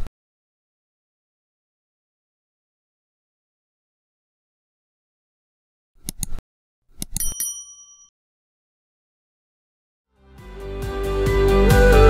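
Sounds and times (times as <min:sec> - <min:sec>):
mouse click: 0:06.0 - 0:06.4, 0:07.0 - 0:07.4
quick clicks: 0:06.0 - 0:07.4
bright bell ding: 0:07.2 - 0:08.1.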